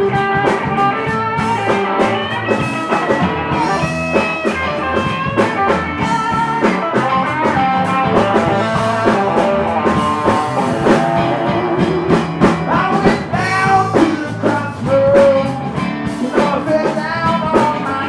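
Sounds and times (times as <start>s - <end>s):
live blues-rock band: 0.0s - 18.0s.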